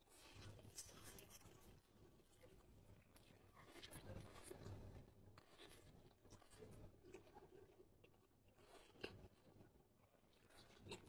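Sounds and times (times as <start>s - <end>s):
chewing food: 5.4s - 11.0s.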